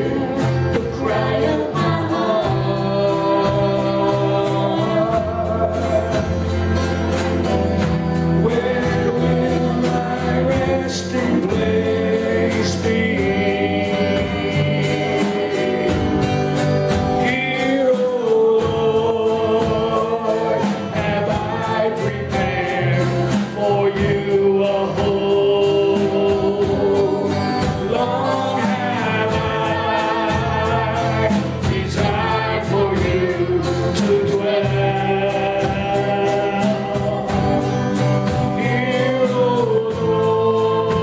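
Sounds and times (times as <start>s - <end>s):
woman singing into a microphone: 0.0s - 5.9s
strummed acoustic guitar: 0.0s - 41.0s.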